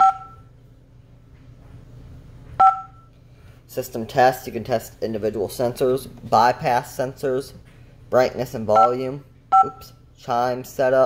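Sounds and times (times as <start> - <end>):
touchscreen key-press beep: 0.0 - 0.4, 2.6 - 3.1, 9.6 - 9.9.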